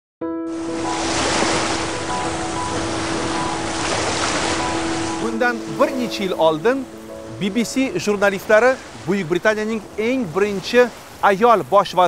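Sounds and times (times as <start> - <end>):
soft background music: 0.4 - 11.4
ocean surf washing: 0.5 - 12.0.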